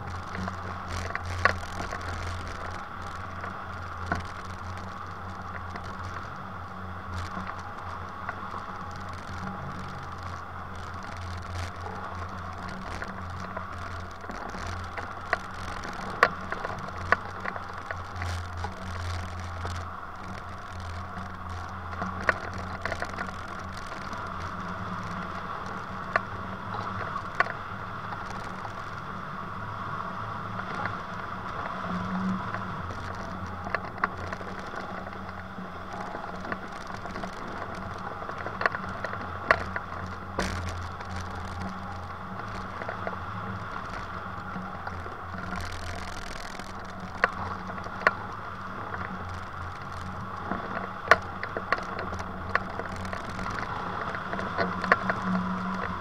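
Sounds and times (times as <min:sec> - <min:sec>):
short clicks and rattles: 0:32.8 - 0:56.0.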